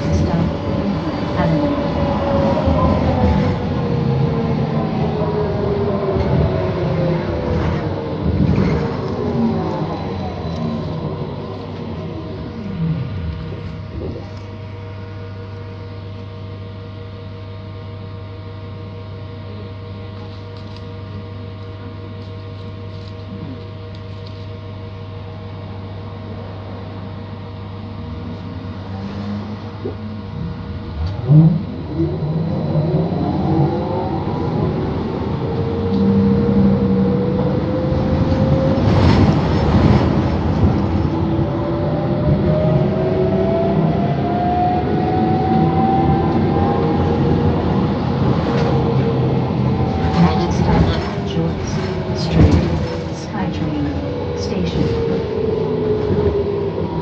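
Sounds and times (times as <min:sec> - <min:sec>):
bus engine hum and whine: 0:00.0 - 0:57.0.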